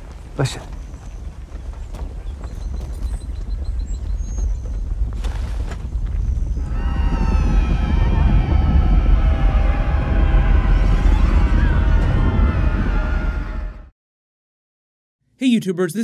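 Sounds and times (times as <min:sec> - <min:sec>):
deep rumble: 0:00.0 - 0:13.9
tense music with wavering high tones: 0:06.5 - 0:13.9.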